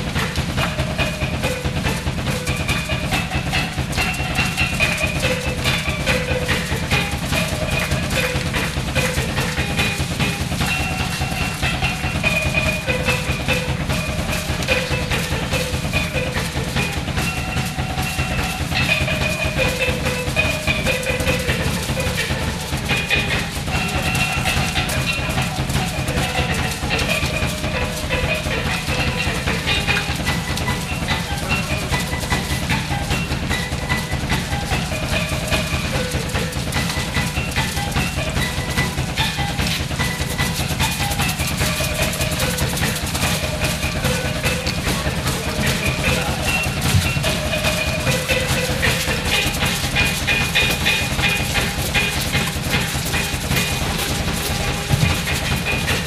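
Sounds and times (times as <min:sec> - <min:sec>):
fast drum kit playing: 0:00.0 - 0:56.0.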